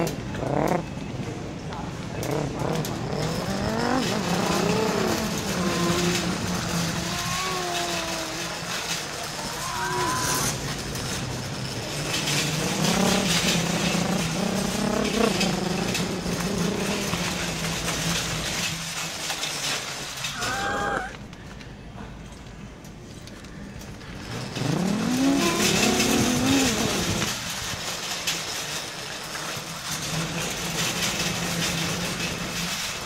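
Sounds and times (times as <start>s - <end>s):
shopping cart rolling and rattling: 0.0s - 21.0s, 22.1s - 33.0s
person imitating car engine: 3.3s - 8.7s, 9.4s - 10.6s, 20.4s - 21.2s, 25.0s - 27.2s.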